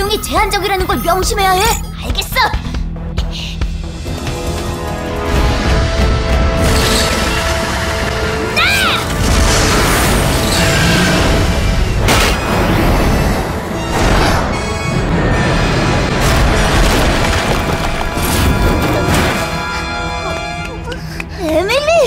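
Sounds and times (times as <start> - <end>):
dramatic background music: 0.0 - 22.0
rocket thruster effects: 5.2 - 20.1
booms: 13.9 - 19.6.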